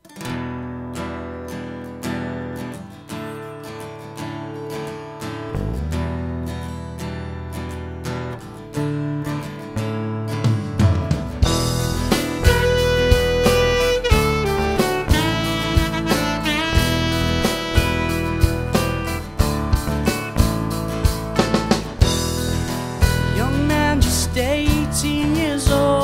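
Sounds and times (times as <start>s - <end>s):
acoustic guitar strumming chords: 0.0s - 26.0s
electric bass guitar: 5.3s - 26.0s
saxophone long held note: 12.3s - 18.9s.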